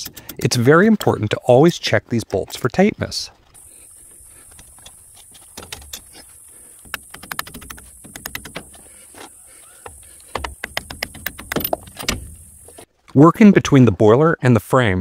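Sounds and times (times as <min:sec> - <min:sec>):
metal tools clicking and clinking: 0:00.0 - 0:01.1, 0:04.5 - 0:08.8, 0:10.7 - 0:12.3.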